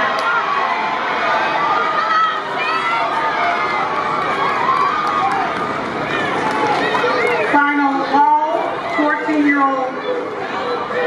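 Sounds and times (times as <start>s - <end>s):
spectators shouting and talking: 0.0s - 11.0s.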